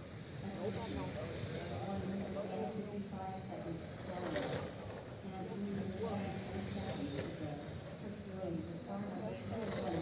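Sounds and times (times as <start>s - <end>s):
people talking: 0.4s - 4.5s, 5.2s - 10.0s.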